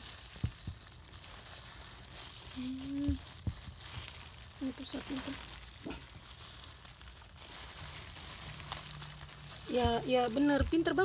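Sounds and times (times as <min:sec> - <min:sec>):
plastic gloves crinkling: 0:00.0 - 0:11.0.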